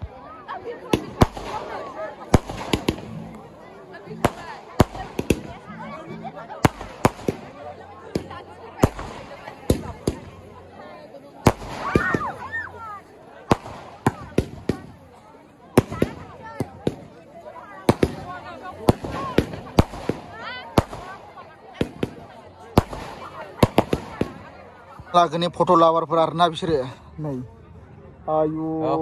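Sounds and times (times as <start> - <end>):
fireworks bangs: 0.8 - 3.5, 4.1 - 5.8, 6.5 - 10.5, 11.4 - 15.0, 15.7 - 25.0.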